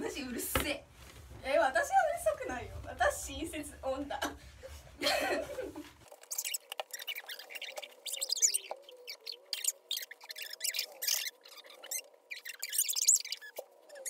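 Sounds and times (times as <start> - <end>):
faint wavering squeaks: 6.1 - 14.0.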